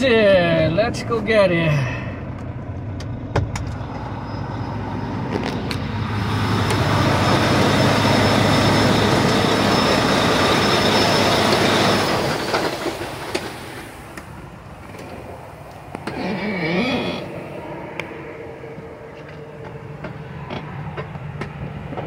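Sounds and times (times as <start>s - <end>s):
large vehicle passing: 3.6s - 21.9s.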